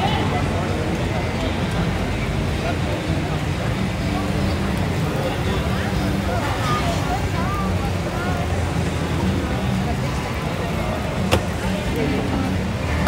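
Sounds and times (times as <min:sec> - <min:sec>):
faint crowd voices: 0:00.0 - 0:13.0.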